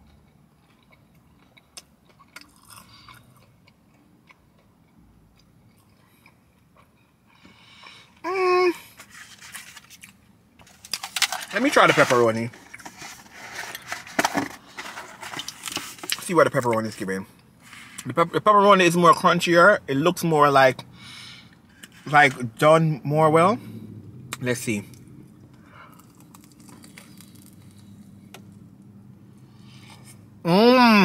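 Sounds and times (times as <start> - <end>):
crunchy pizza chewing: 0.0 - 8.1, 24.7 - 28.6
low steady hum: 0.0 - 31.0.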